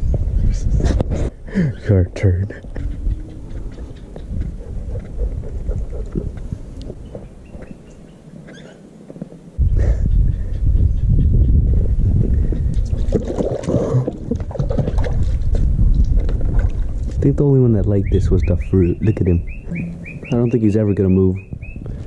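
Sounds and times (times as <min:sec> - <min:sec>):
water splashing in a plastic pool: 0:12.9 - 0:17.2.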